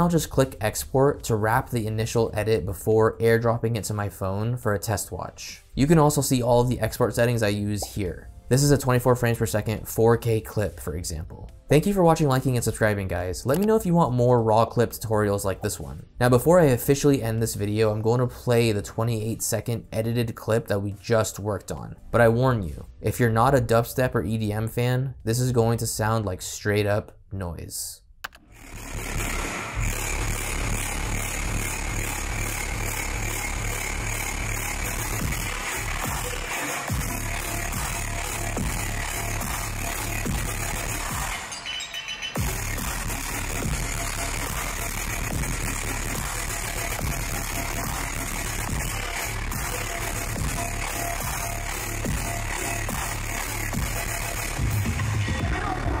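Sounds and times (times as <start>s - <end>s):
dubstep over sound system: 0.0s - 3.4s, 28.3s - 56.0s.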